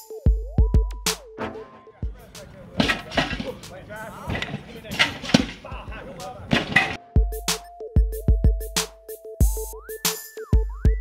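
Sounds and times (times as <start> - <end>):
hip-hop beat with deep bass: 0.0 - 2.7, 7.0 - 11.0
indistinct voices: 1.8 - 7.0
sharp thumps and knocks: 4.3 - 5.7, 6.5 - 7.0.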